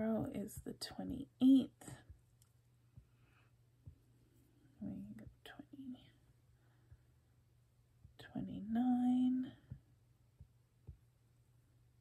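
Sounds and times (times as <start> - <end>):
woman whispering: 4.8 - 6.2, 8.2 - 9.7.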